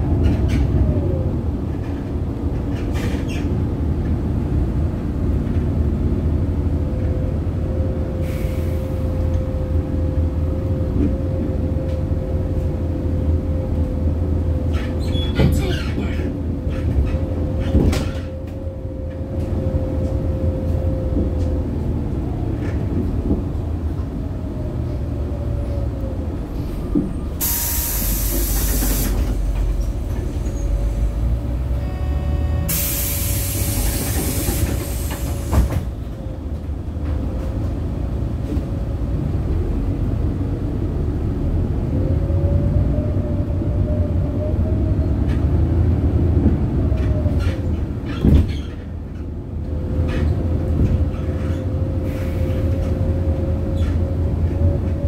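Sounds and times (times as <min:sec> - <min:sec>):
bus engine rumble and whine: 0:00.0 - 0:55.0
pneumatic air hiss: 0:27.4 - 0:29.4, 0:32.7 - 0:35.9.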